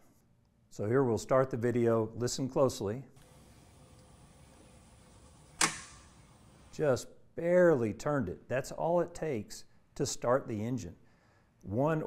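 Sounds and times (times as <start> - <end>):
magneto coupling click: 3.2 - 6.8.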